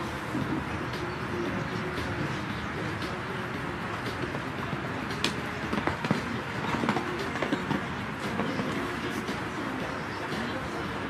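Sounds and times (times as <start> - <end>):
steady outdoor rumble: 0.0 - 11.0
horse hoofbeats on sand: 3.0 - 10.1.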